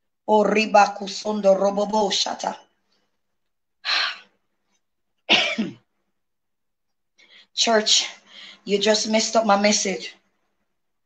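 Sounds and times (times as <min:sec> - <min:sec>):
short coughs: 0:05.3 - 0:05.9.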